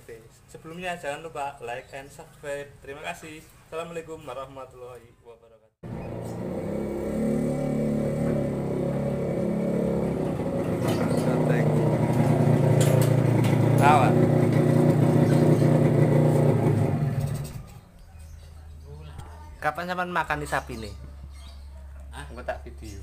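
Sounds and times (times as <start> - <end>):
small motorcycle engine running: 5.8 - 17.8.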